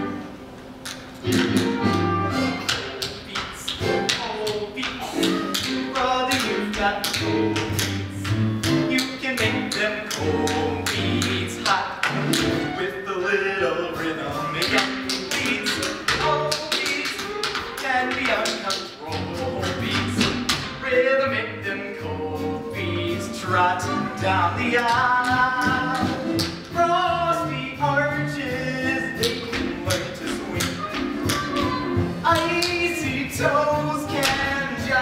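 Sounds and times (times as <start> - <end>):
musical accompaniment: 0.0 - 35.0
tap shoes on stage floor: 0.8 - 12.8, 13.8 - 20.9, 22.8 - 35.0.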